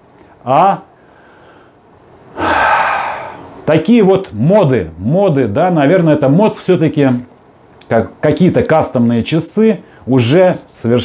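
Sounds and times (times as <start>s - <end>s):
man taking sharp breath: 1.0s - 3.6s.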